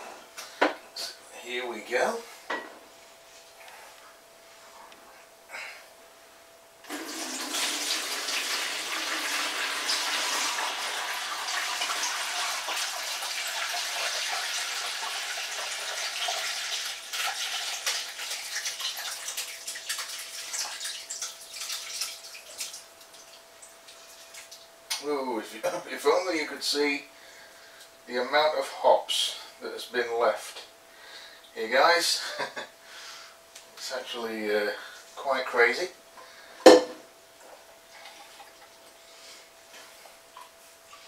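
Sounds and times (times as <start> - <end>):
liquid pouring and splashing: 6.9 - 24.7, 37.9 - 38.7
liquid trickling and dripping: 15.3 - 24.7.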